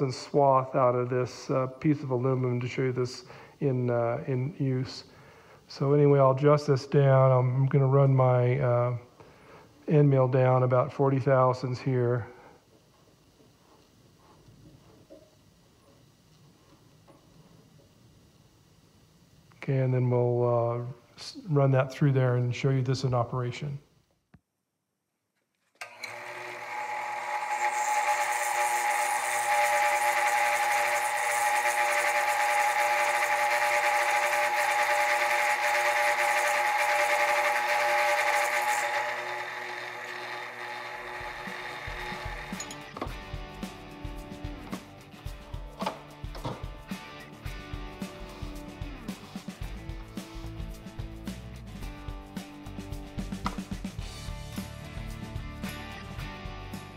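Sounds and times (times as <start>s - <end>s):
drill press whine: 25.7s - 43.1s
guitar music: 42.3s - 56.9s.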